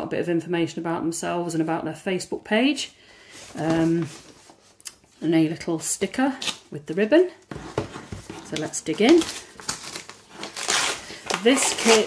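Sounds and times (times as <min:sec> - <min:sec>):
paper tearing and crinkling: 0:08.5 - 0:12.0.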